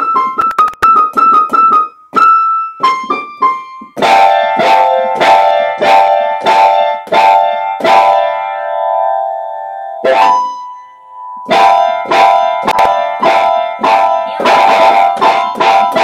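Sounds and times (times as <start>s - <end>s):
keyboard chord struck repeatedly: 0.0s - 16.0s.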